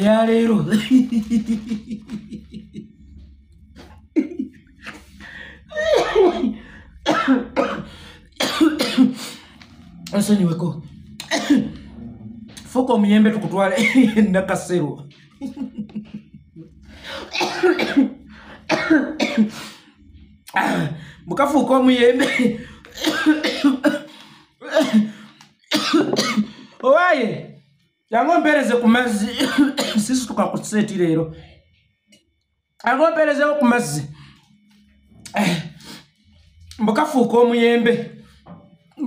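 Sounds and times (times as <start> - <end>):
man talking: 0.0 - 2.0, 10.0 - 15.1, 20.5 - 22.7, 26.2 - 31.4, 32.8 - 34.2
man coughing into tissue: 5.7 - 9.5, 11.2 - 11.9, 13.7 - 14.3, 17.2 - 19.7, 22.1 - 26.8, 29.1 - 30.2.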